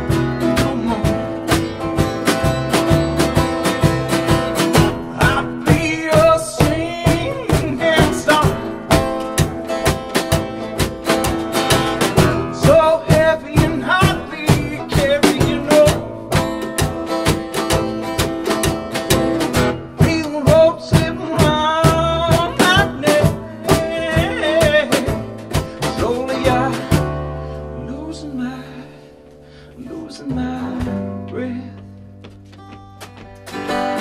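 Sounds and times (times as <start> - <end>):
man singing: 0.0 - 1.8, 4.8 - 9.3, 12.2 - 16.6, 19.8 - 32.0
strummed acoustic guitar: 0.0 - 34.0.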